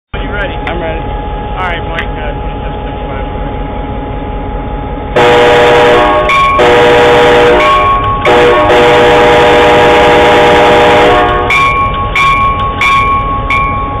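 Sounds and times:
locomotive air horn: 5.2 - 11.6.

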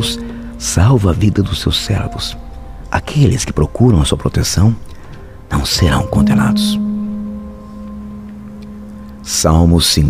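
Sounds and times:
held low musical tone: 0.0 - 10.0.

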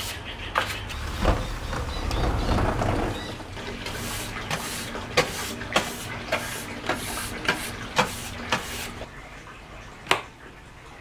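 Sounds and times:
brush scrubbing metal track: 0.0 - 9.0.

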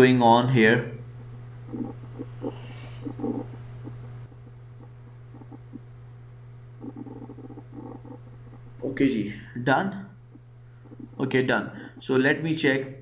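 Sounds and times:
low hum of recording noise: 0.0 - 13.0.

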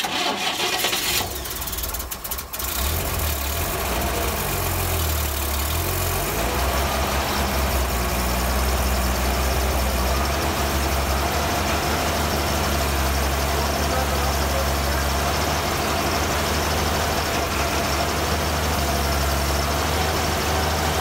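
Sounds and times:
car engine cranking and idling: 0.0 - 21.0.

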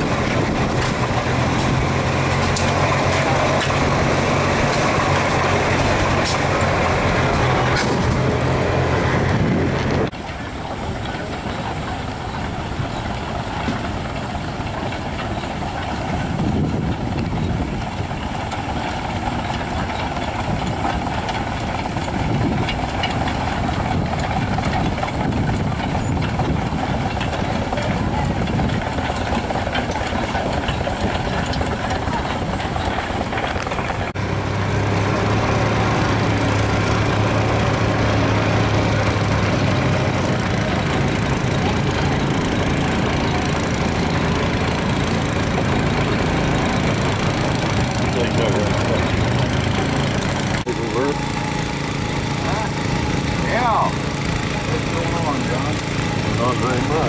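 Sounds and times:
engine drone with low hum: 0.0 - 57.0
old engines knocking: 0.0 - 57.0.

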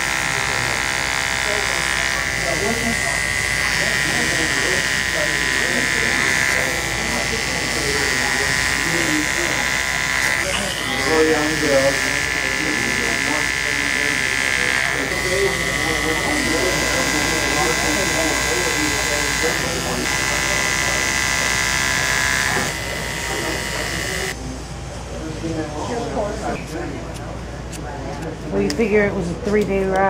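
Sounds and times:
hair clipper buzzing: 0.0 - 24.4.

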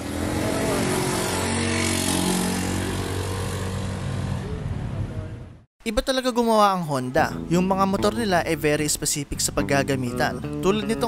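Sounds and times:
scooter engine humming: 0.0 - 5.5.

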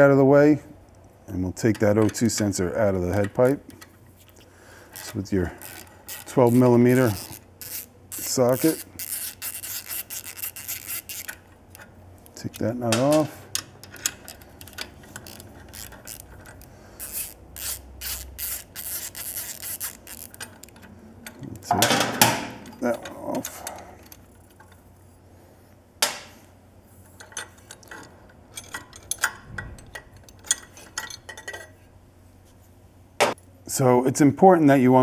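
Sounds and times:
metal clicks and rubbing: 0.9 - 25.0, 27.0 - 31.8
socket ratchet clicking: 5.0 - 12.4, 13.1 - 21.4.

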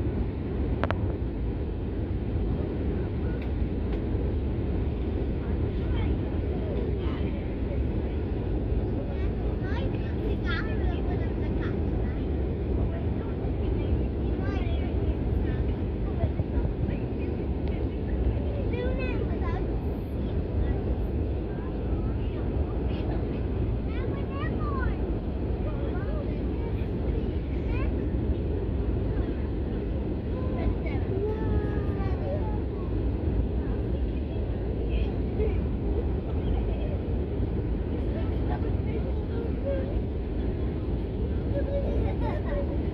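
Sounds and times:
faint passenger voices: 0.0 - 42.9
jet engine and airflow rumble: 0.0 - 42.9.

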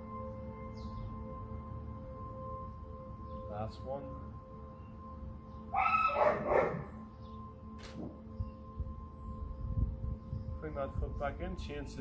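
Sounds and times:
soft background music: 0.0 - 12.0
loud pitched animal call: 5.7 - 6.9.

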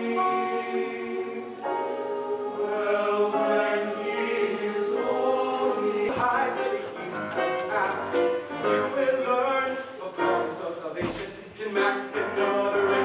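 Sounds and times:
choir singing held chords: 0.0 - 13.0.

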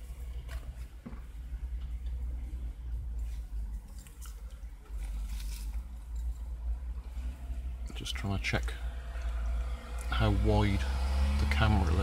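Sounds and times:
plywood sheets and tarp rustling: 3.2 - 6.4.

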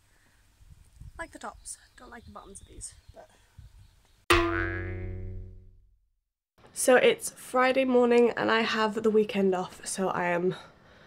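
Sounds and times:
struck tone ringing: 4.3 - 5.7.

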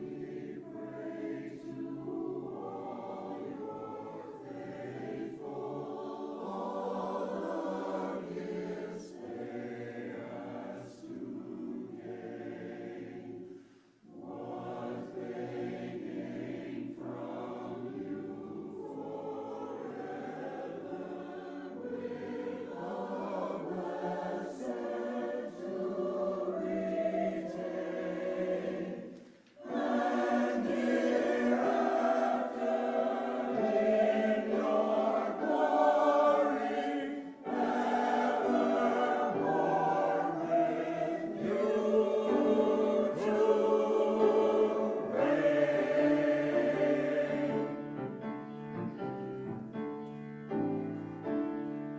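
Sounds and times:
church choir singing: 0.0 - 51.9.

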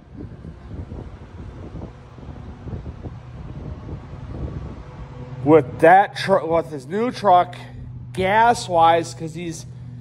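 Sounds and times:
wind buffeting microphone: 0.0 - 8.9.

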